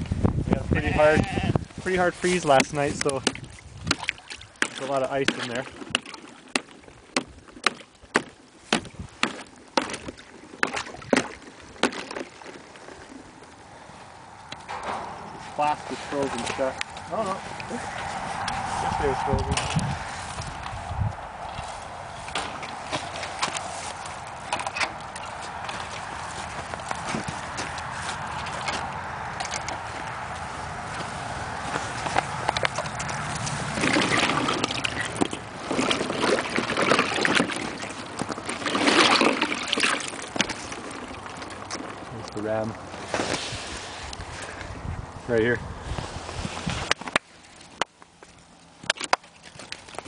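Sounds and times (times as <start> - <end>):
water splashing over ice: 2.1 - 14.8, 21.4 - 44.7, 46.6 - 50.0
hose water running into tub: 27.8 - 42.7.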